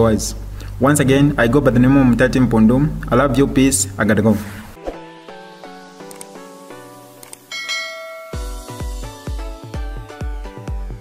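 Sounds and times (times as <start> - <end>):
electronic dance music: 5.2 - 11.0
notification bell chime: 7.5 - 9.1.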